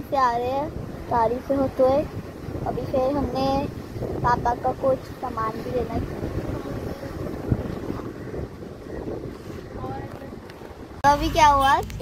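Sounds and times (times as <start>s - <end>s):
car road and wind noise: 0.0s - 12.0s.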